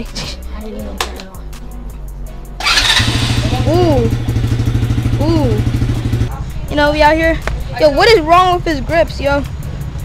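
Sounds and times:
background music: 0.0s - 10.0s
small atv engine starting: 2.6s - 6.3s.

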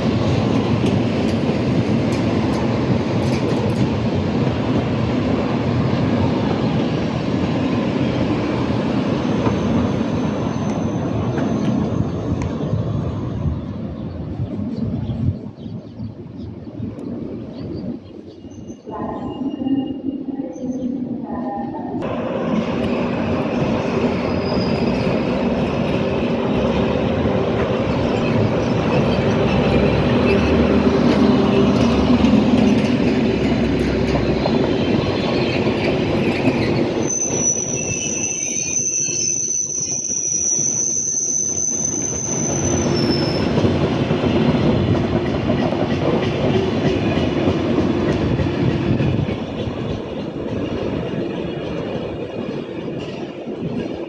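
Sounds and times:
rumble of train wheels on rail: 0.0s - 54.0s
high wheel squeal: 36.4s - 43.6s.

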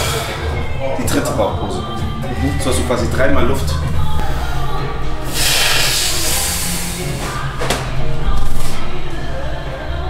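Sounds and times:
background music with bass line: 0.0s - 10.0s
loud hiss: 5.2s - 7.4s.

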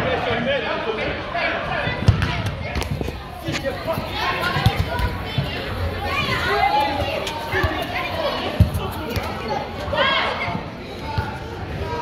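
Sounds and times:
soccer ball kick thumps: 2.0s - 3.1s, 4.4s - 5.6s, 8.5s - 9.3s
kids and spectators shouting: 3.7s - 10.6s.

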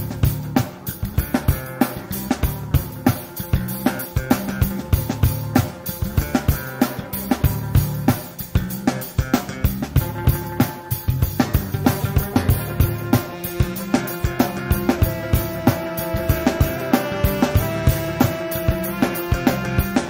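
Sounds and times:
busy drum kit: 0.0s - 20.0s
funk band playing: 0.0s - 20.0s
low bass notes: 0.0s - 20.0s.

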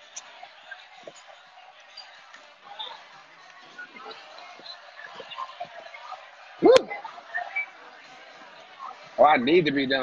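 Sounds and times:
diners chattering: 0.0s - 10.0s.

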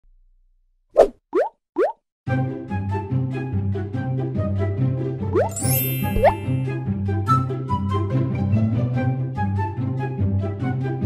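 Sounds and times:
cartoon pop sound effects: 1.0s - 2.0s, 5.4s - 6.6s.

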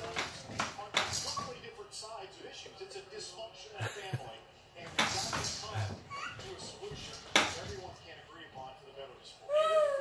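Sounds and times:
faint background talk: 0.0s - 10.0s.

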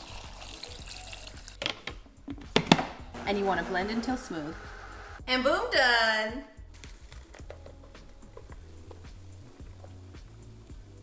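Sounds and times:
water pouring into a jar: 0.0s - 1.6s
background music: 0.0s - 11.0s.

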